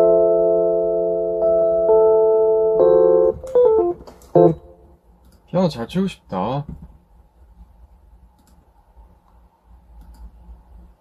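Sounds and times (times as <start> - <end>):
electronic keyboard chords and notes: 0.0 - 5.0.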